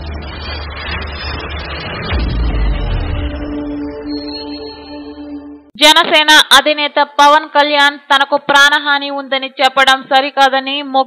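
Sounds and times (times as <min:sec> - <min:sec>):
deep low drone: 0:00.0 - 0:05.7
rumbling whoosh: 0:00.0 - 0:05.7.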